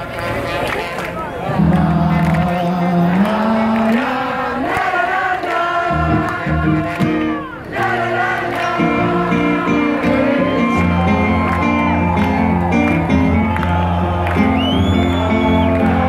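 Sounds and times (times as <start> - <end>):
crowd singing along: 1.2 - 16.0
live rock band playing: 9.2 - 13.6.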